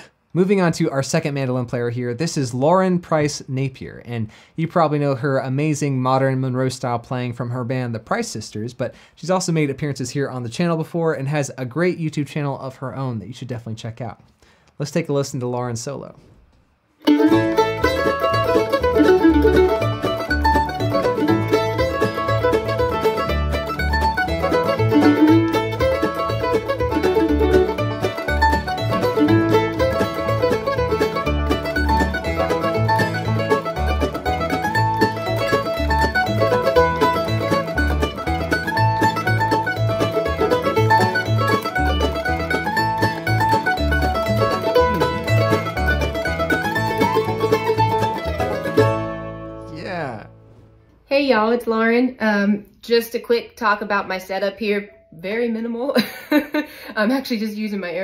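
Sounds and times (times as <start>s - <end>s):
mandolin playing fast melody: 17.0s - 50.6s
backing track bass line: 17.1s - 50.8s.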